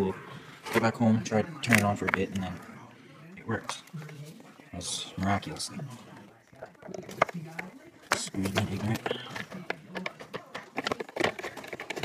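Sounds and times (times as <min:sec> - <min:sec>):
man speaking: 0:00.0 - 0:03.9, 0:04.7 - 0:06.1, 0:08.1 - 0:09.4.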